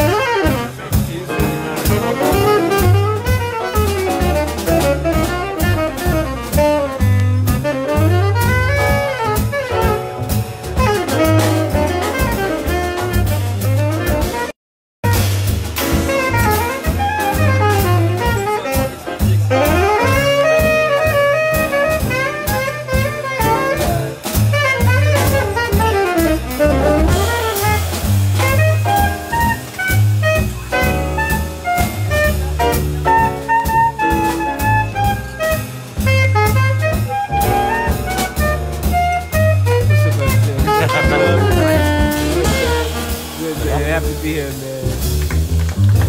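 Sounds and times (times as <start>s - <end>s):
drum kit with cymbals: 0.0s - 46.0s
piano: 0.0s - 46.0s
tenor saxophone soloing: 0.0s - 46.0s
upright bass: 0.0s - 46.0s.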